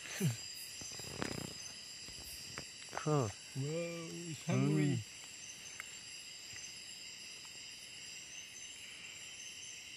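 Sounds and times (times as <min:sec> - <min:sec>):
crickets trilling: 0:00.0 - 0:09.9
faint ticks: 0:05.2 - 0:06.7.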